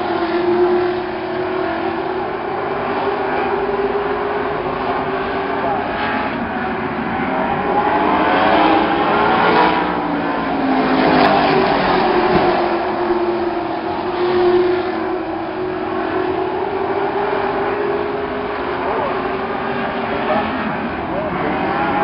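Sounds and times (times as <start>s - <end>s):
race car engines droning: 0.0s - 22.0s.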